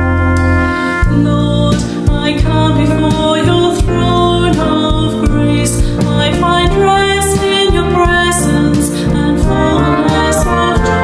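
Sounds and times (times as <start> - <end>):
brass band playing slow worship song: 0.0 - 11.0.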